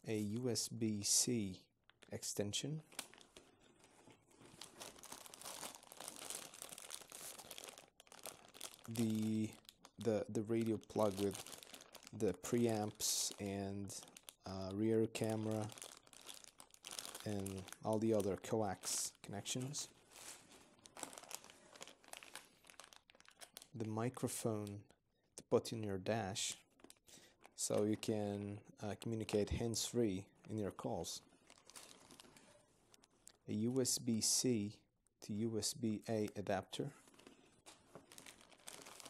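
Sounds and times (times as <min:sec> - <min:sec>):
plastic bags crinkling: 0:02.8 - 0:23.8, 0:31.2 - 0:33.4, 0:37.0 - 0:39.0.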